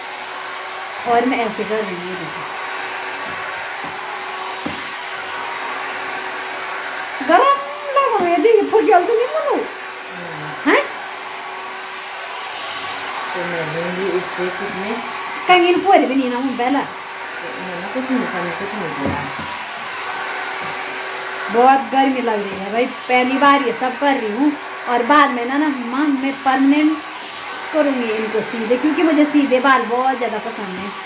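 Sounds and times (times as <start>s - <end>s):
hair dryer whirring: 0.0s - 31.0s
person's voice: 1.0s - 2.5s, 7.2s - 11.0s, 13.3s - 19.5s, 21.5s - 27.1s, 27.8s - 31.0s.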